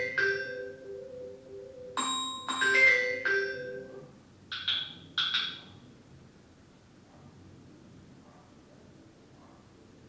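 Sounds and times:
bell-like struck notes: 0:02.0 - 0:04.1.

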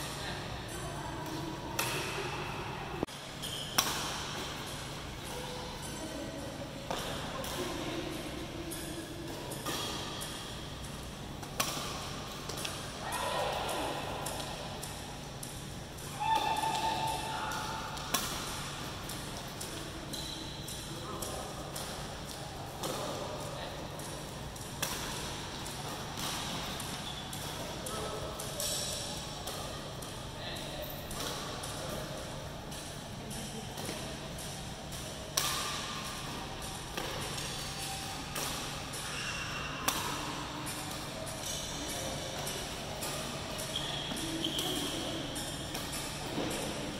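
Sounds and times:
wall fans humming: 0:00.0 - 0:46.9
rackets striking shuttlecocks: 0:03.4 - 0:05.5, 0:06.9 - 0:23.2, 0:24.0 - 0:39.1, 0:39.8 - 0:46.9.

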